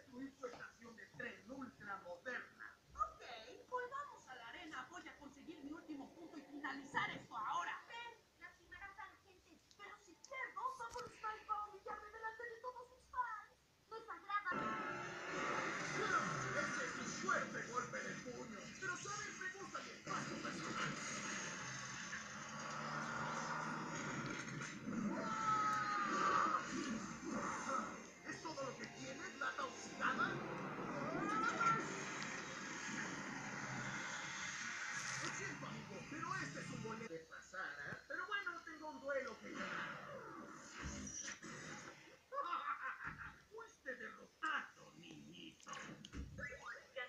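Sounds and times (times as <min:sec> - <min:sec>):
cartoon voices from television: 0:00.0 - 0:47.0
background music from television: 0:04.0 - 0:08.2, 0:14.4 - 0:43.2.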